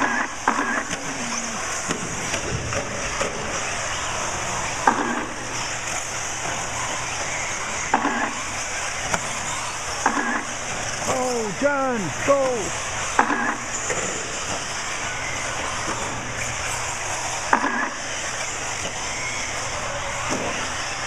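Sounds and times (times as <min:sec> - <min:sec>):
rc buggies whining: 0:00.0 - 0:21.0.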